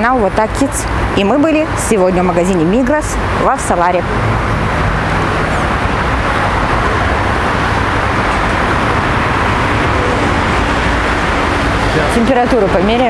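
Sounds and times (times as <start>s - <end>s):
road traffic rushing: 0.0s - 13.0s.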